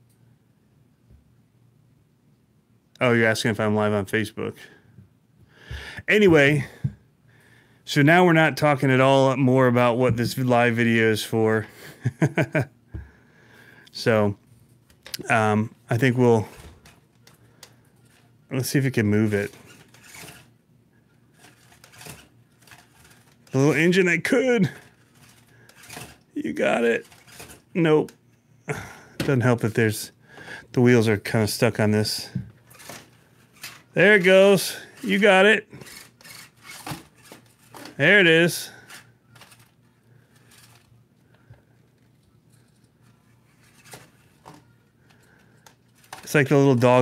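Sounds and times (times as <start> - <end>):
toy car tyres clicking and scuffing: 19.2 - 20.5, 21.3 - 23.8, 24.7 - 27.7, 32.6 - 47.0.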